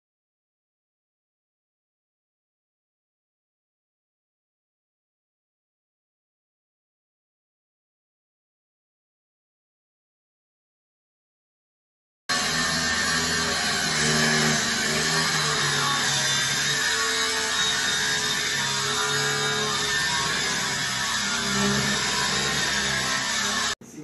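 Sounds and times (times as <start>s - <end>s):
angle grinder cutting metal: 12.3s - 23.8s.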